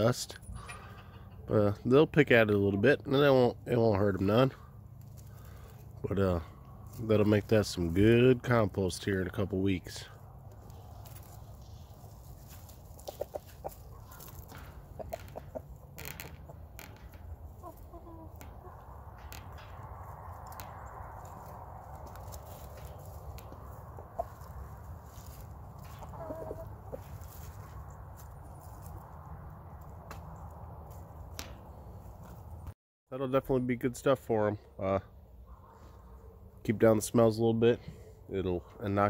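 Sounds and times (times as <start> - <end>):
scratching in dry leaves: 5.0 - 8.2, 10.2 - 15.7, 20.2 - 31.2
hens and rooster clucking: 9.7 - 19.8, 20.4 - 29.0.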